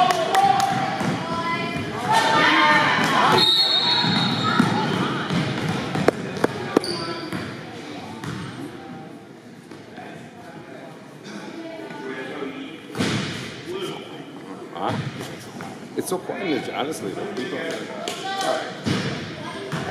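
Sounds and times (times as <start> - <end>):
voices in echoing gym: 0.0 - 19.9.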